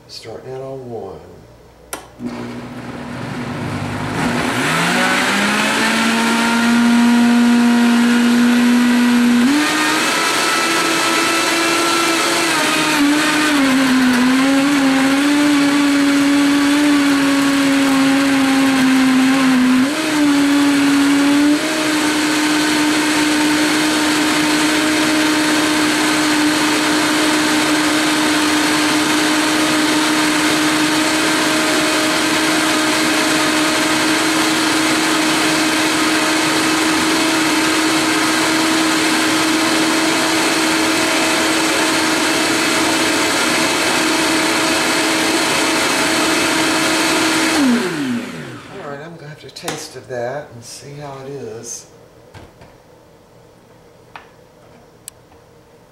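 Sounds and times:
blender running: 0:02.2 - 0:49.0.

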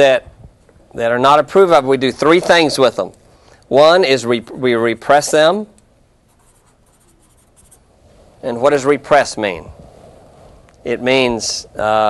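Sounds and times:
writing scratching on a board: 0:06.3 - 0:07.8.

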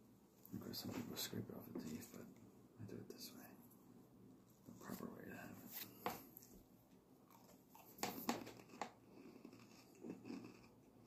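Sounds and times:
person whispering: 0:00.5 - 0:03.6, 0:04.7 - 0:05.9.

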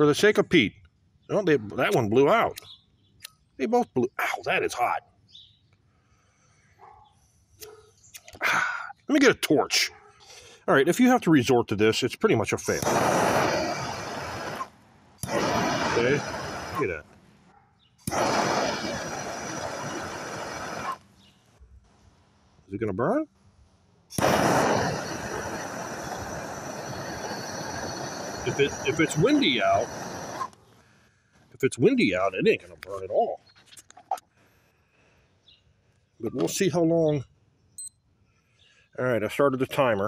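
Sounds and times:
faint outdoor background: 0:00.0 - 0:40.0
gas torch flame hissing: 0:12.6 - 0:17.0, 0:18.0 - 0:21.1, 0:24.1 - 0:30.6.

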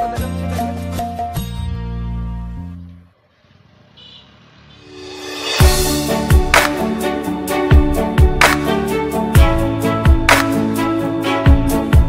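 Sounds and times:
background music: 0:00.0 - 0:03.0, 0:04.8 - 0:12.0.

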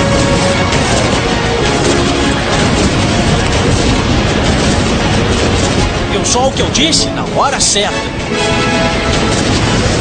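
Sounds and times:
music: 0:00.0 - 0:10.0
warship gunfire and blasts: 0:00.0 - 0:10.0.

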